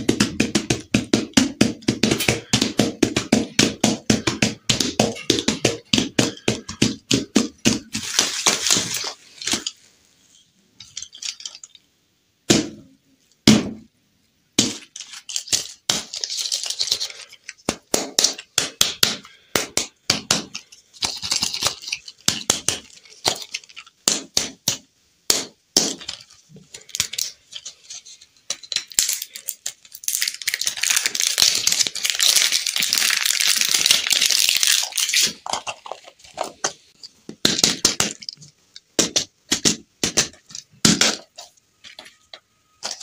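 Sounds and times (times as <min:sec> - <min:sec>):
plastic wrapper crinkling: 0:07.8 - 0:09.9, 0:14.8 - 0:17.7, 0:20.6 - 0:24.0, 0:26.0 - 0:37.1, 0:41.2 - 0:43.0.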